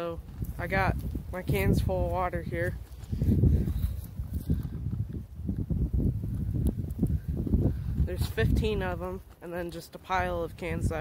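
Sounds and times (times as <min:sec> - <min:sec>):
wind rumble on microphone: 0:00.0 - 0:11.0
footsteps through grass and leaves: 0:00.2 - 0:05.0
microphone handling noise: 0:00.2 - 0:09.4.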